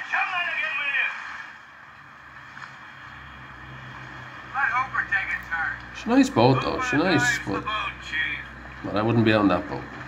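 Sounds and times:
boat engine drone: 0.0s - 10.0s
sea noise: 0.0s - 10.0s.

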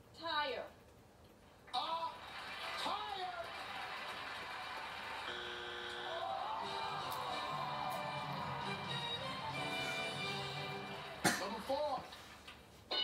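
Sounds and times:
studio audience cheering: 1.9s - 11.3s
game-show music: 6.1s - 11.2s.

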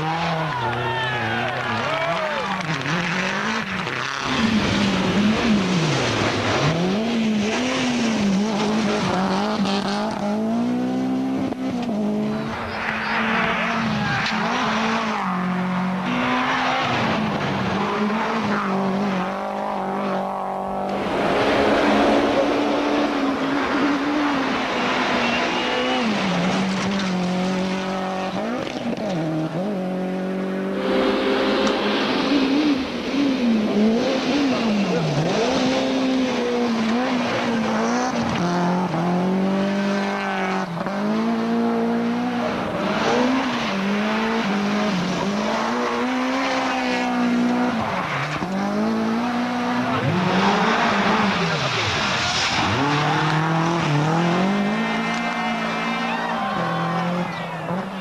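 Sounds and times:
rally car engine revving: 0.0s - 58.0s.

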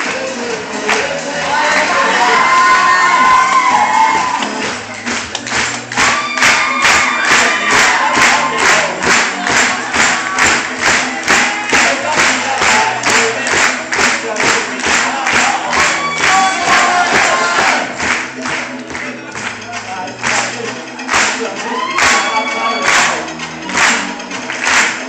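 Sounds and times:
group singing a pop song: 0.0s - 4.4s, 7.0s - 18.0s
crowd cheering: 1.4s - 4.6s, 6.0s - 13.3s, 15.0s - 18.0s, 21.4s - 23.2s.

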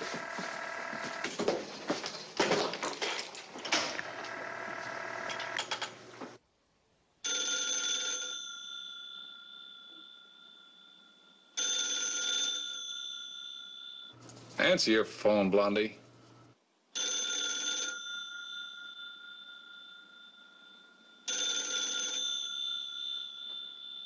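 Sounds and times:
telephone bell ringing: 0.0s - 1.6s, 4.0s - 5.8s, 7.2s - 14.2s, 17.0s - 24.0s.

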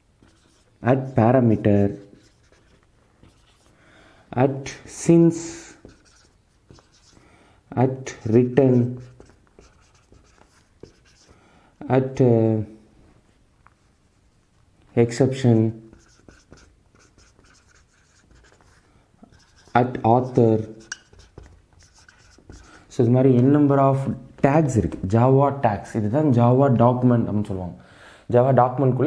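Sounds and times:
marker writing on whiteboard: 0.0s - 3.8s, 4.5s - 7.2s, 7.9s - 11.4s, 15.1s - 23.5s.

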